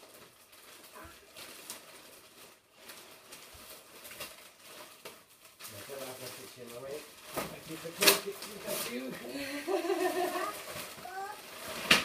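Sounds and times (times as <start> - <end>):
plastic packaging rustling: 0.0 - 12.0.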